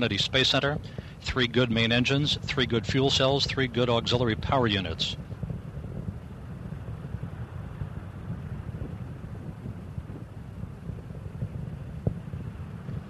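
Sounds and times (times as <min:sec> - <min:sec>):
rocket engines rumbling: 0:00.0 - 0:13.0.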